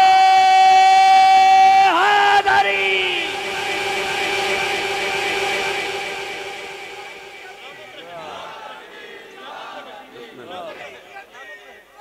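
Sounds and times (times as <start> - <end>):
voice chanting a long note: 1.2 - 10.8.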